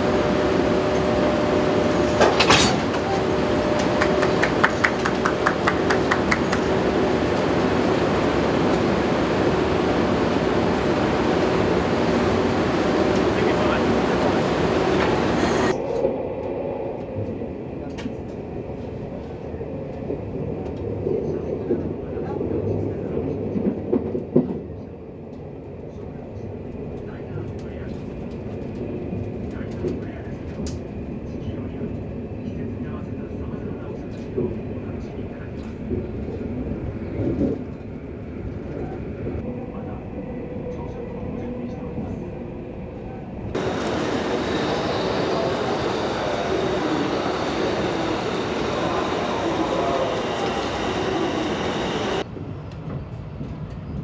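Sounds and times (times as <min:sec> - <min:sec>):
hissy train running noise: 0:00.0 - 0:23.7, 0:29.2 - 0:53.9
train rumbling on rails: 0:00.0 - 0:54.0.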